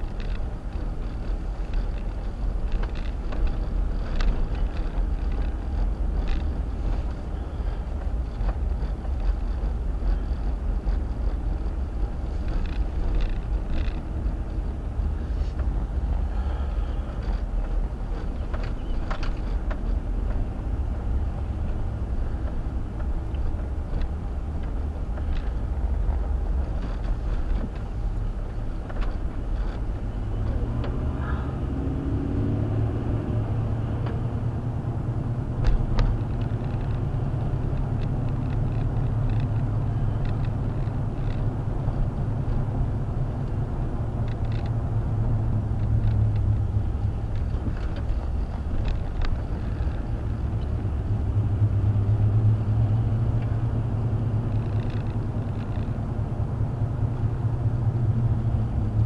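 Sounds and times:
car engine and road rumble: 0.0s - 59.0s.

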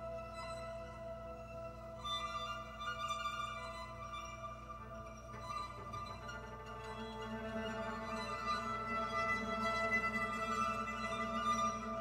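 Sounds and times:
string quartet bowed notes: 0.0s - 12.0s.

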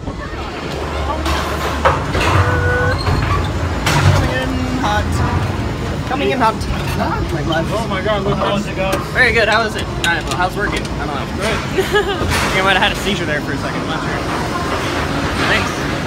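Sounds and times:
gondola machinery humming: 0.0s - 16.0s
people's voices: 0.0s - 16.0s.

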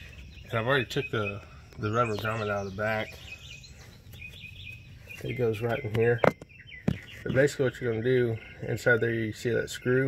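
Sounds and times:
birds chirping: 0.0s - 10.0s
low steady outdoor noise: 0.0s - 10.0s.

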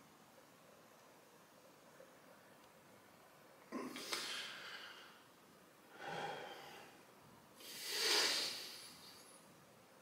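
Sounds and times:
man breathing deeply: 4.0s - 5.3s, 5.9s - 7.0s, 7.6s - 9.2s.

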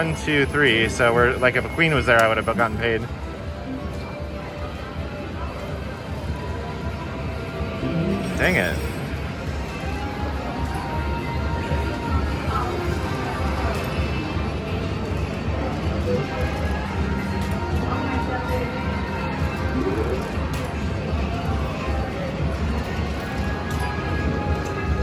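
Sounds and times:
background chatter: 0.0s - 25.0s
slot machine music: 7.6s - 9.6s
slot machine tones and jingles: 7.8s - 9.1s.

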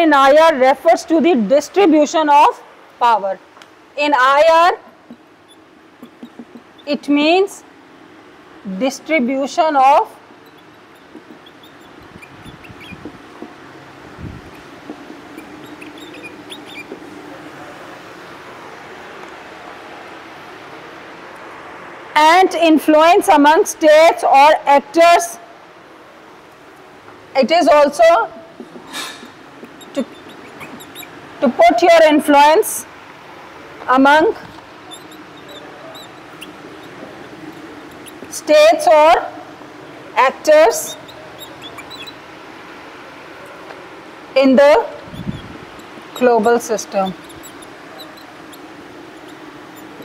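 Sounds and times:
room noise: 3.0s - 22.2s, 25.8s - 50.0s
marker squeaking on whiteboard: 5.1s - 7.1s, 9.9s - 17.3s, 28.6s - 32.0s, 34.2s - 39.2s, 40.5s - 42.2s, 44.6s - 50.0s.

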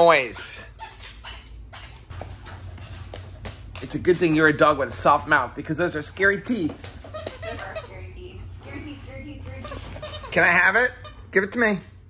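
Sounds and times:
low steady hum: 0.0s - 12.0s
dog claws clicking on wood floor: 2.2s - 4.7s, 6.0s - 8.0s.

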